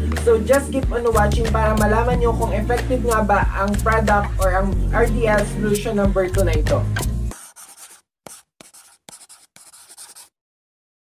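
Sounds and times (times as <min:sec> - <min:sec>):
pen scratching on paper: 0:07.3 - 0:10.4.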